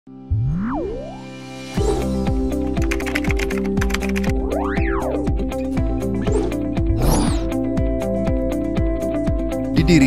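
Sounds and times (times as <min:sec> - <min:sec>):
computer keyboard typing: 0:02.7 - 0:04.4.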